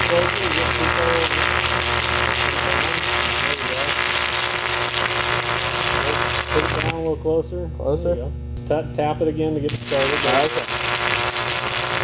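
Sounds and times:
low hum of welder: 0.0 - 12.0
welding arc crackling and sputtering: 0.0 - 12.0.

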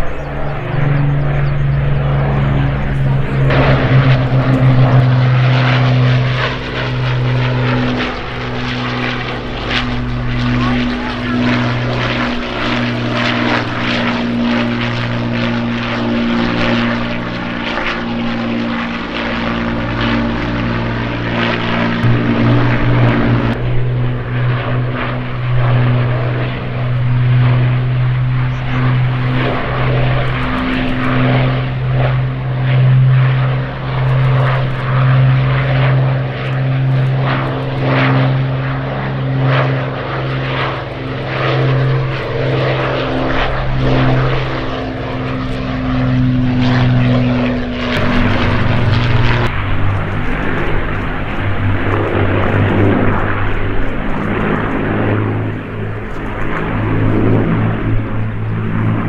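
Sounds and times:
aircraft engines droning: 0.0 - 59.0.

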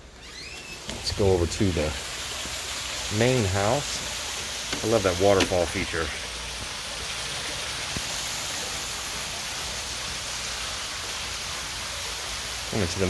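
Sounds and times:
waterfall splashing into pond: 0.0 - 13.0.

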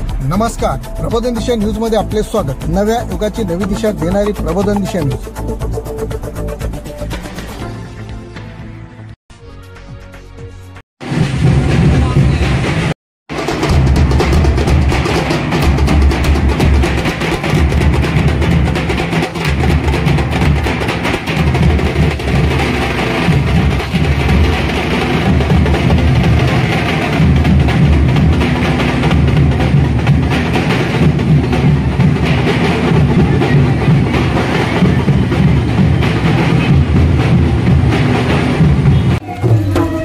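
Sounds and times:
loud driving drumming: 0.0 - 7.7, 11.0 - 40.0
music: 0.0 - 40.0.

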